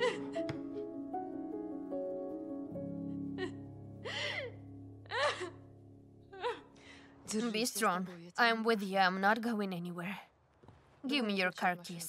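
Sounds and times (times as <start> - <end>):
woman sobbing: 0.0 - 0.5, 3.0 - 6.8
soft background music: 0.0 - 8.9.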